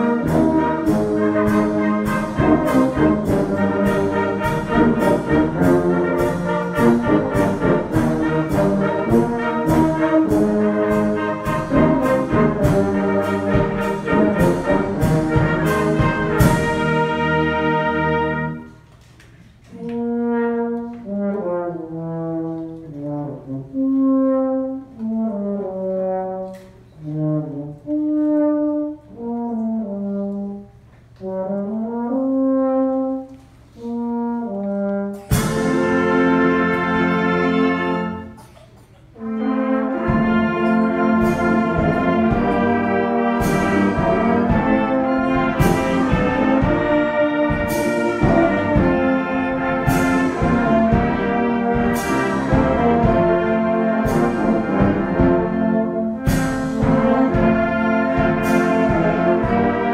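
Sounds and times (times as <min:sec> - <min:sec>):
brass band playing: 0:00.0 - 0:18.9, 0:19.6 - 0:59.9.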